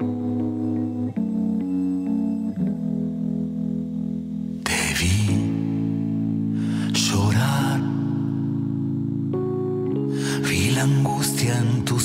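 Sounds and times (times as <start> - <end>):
guitar-led instrumental music: 0.0 - 12.0.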